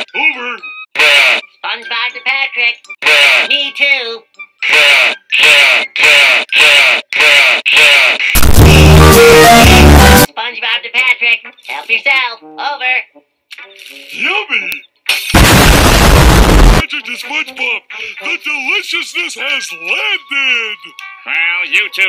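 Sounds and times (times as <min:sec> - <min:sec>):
short rhythmic vocal sounds: 0:04.6 - 0:08.4
loud noisy cartoon blasts: 0:04.7 - 0:10.3, 0:15.4 - 0:16.8.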